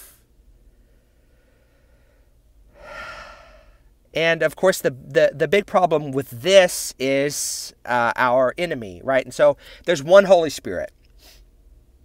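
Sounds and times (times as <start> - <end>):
man breathing: 0.0 - 4.0, 9.6 - 9.9
man speaking: 4.2 - 10.9.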